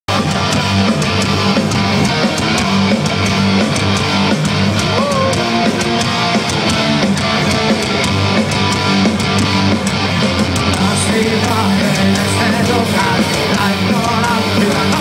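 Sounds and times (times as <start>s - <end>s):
live punk rock band: 0.1s - 15.0s.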